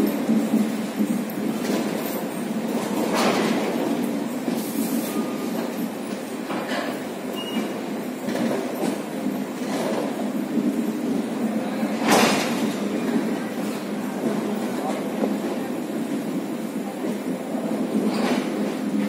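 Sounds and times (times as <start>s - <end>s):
train wheels clacking: 0.0s - 19.0s
train wheels rumbling on rail: 0.0s - 19.0s.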